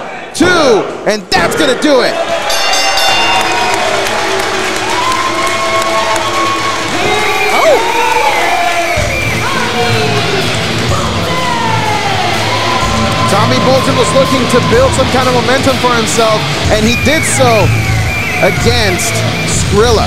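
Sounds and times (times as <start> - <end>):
arena crowd cheering and yelling: 0.0 - 20.0
music playing: 2.5 - 20.0
heavy bass beat: 14.6 - 20.0.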